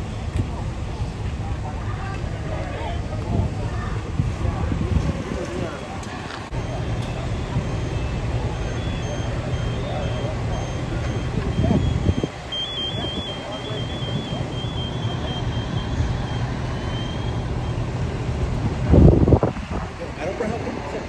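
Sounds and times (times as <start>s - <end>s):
diesel engines rumbling: 0.0s - 21.0s.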